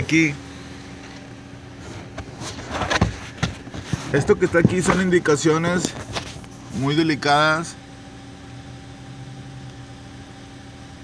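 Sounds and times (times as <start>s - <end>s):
knocks and rustles from handling: 1.8s - 5.2s.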